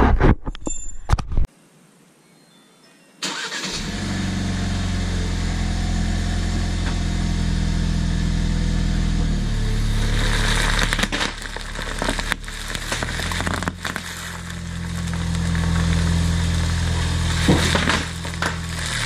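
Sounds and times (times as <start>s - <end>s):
car engine starting and idling: 3.2s - 19.0s
bubble wrap popping: 9.9s - 19.0s.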